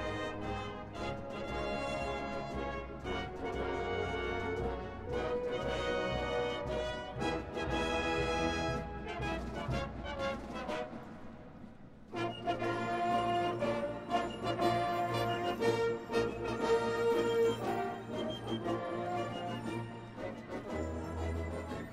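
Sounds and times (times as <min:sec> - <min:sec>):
marching band playing: 0:00.0 - 0:21.9.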